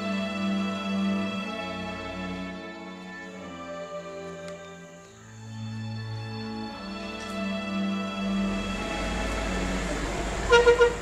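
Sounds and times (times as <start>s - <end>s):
horn tooting: 8.4s - 11.0s.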